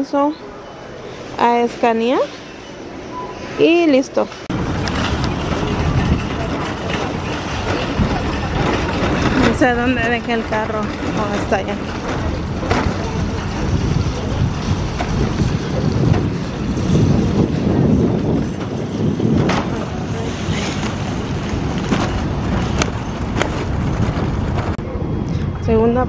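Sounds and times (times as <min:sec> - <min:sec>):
wind buffeting microphone: 0:04.0 - 0:26.0
cart clicks and rattles: 0:04.5 - 0:24.8
shopping cart rolling on asphalt: 0:04.5 - 0:24.8.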